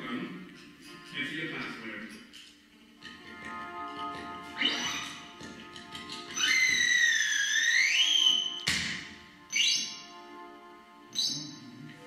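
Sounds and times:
electronic drone: 4.2s - 8.6s
synthesizer gliding whistle tone: 4.6s - 5.3s, 6.3s - 8.7s, 9.4s - 10.2s.

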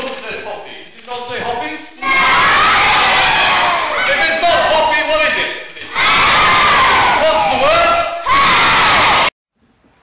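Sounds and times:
children shouting together: 2.0s - 4.8s.

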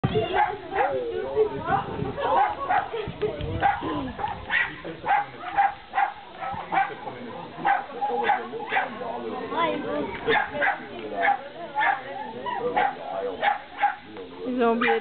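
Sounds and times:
people's voices: 0.0s - 15.0s.

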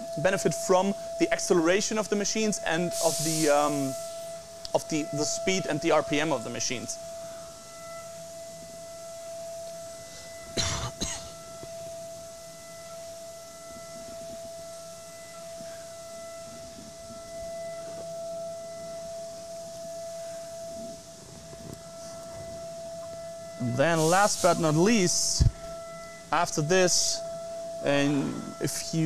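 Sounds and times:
milling spindle high-pitched whine: 0.0s - 29.0s
person coughing: 10.6s - 11.4s.

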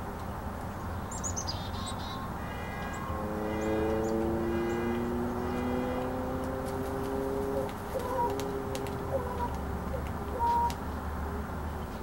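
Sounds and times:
songbird chirping: 0.0s - 11.0s
multi-tone hum rising in pitch: 1.8s - 10.7s.

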